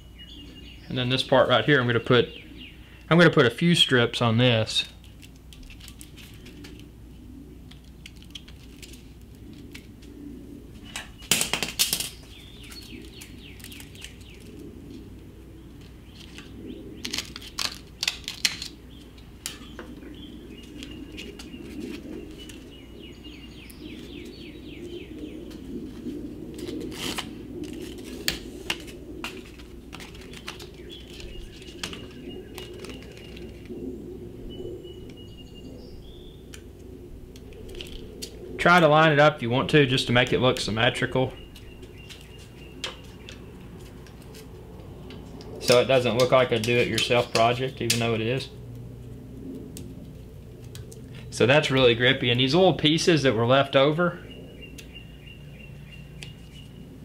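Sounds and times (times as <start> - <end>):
tape peeling crackles: 5.0 - 22.8, 25.4 - 33.8, 36.4 - 38.5, 40.1 - 51.4.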